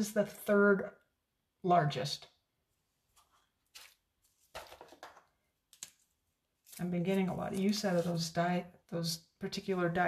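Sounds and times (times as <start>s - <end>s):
paper rustling: 3.1s - 8.3s.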